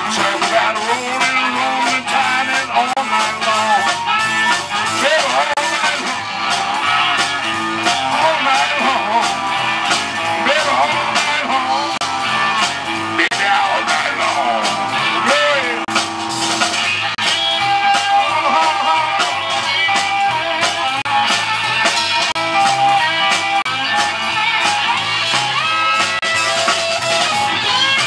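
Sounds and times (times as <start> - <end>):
amplified harmonica: 0.0 - 28.0
bass: 0.0 - 28.0
drums: 0.0 - 28.0
electric guitar: 0.0 - 28.0
keyboard: 0.0 - 28.0.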